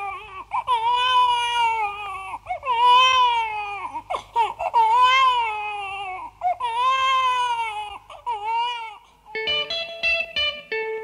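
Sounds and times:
baby crying: 0.0 - 9.4.

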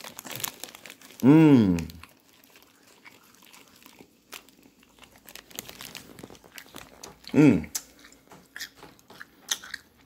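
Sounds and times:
plastic bag crinkling: 0.0 - 9.0
chewing candy: 0.0 - 10.0.

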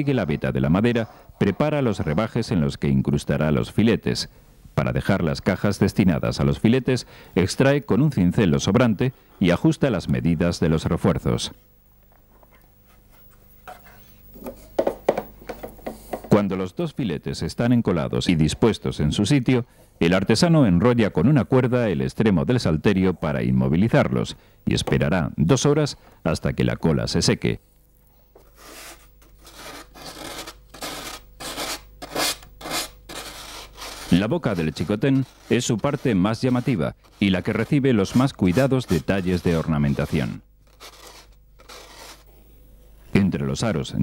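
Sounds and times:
hands rubbing wood: 28.4 - 42.3.

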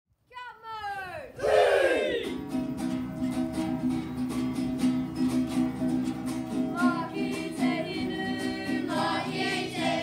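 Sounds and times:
high voice shouting: 0.3 - 2.3.

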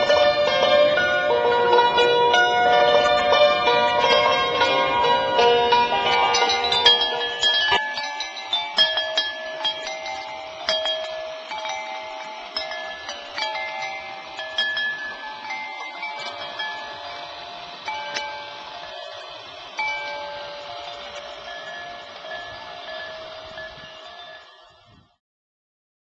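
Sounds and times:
metal chimes ringing: 0.0 - 25.2.

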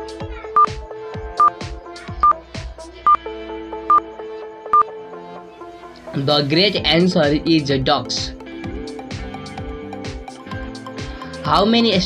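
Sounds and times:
background music with steady beat: 0.0 - 12.0
countdown timer beeping: 0.1 - 2.4, 3.0 - 4.9.

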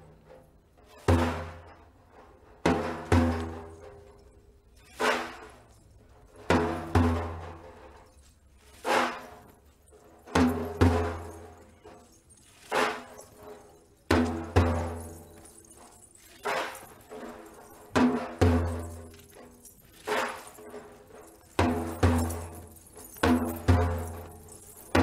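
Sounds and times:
frame drum beaten by hand: 2.6 - 3.9, 6.5 - 7.7.

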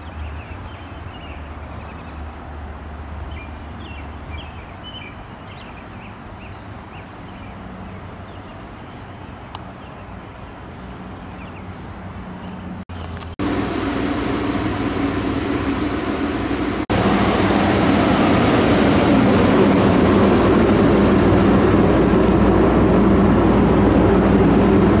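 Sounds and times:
loud engine-like drone: 13.1 - 25.0.

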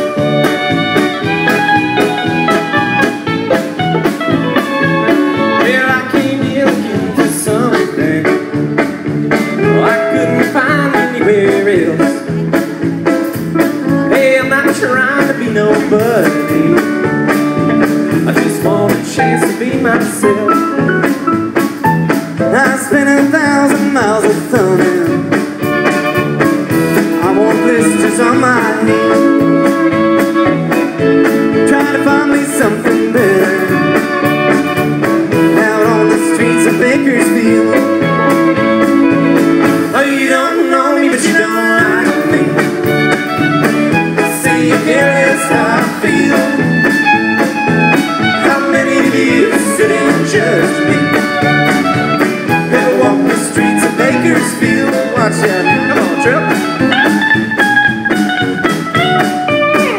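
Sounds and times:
country rock band playing: 0.0 - 59.9
lead guitar bending sliding notes: 0.0 - 59.9
steady drum beat: 0.0 - 59.9
person singing: 4.6 - 8.6, 9.6 - 12.4, 14.0 - 17.0, 18.1 - 20.9, 22.5 - 25.4, 27.0 - 43.3, 44.0 - 47.1, 47.9 - 57.1.

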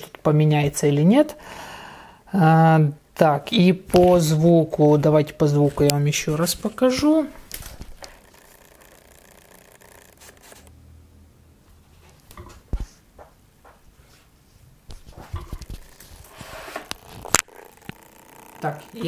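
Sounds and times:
microphone rubbing and rustling: 5.6 - 8.6, 14.0 - 18.9.

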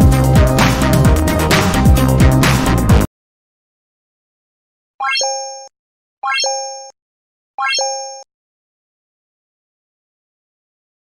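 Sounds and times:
button click chime: 5.0 - 7.0, 7.6 - 8.3.

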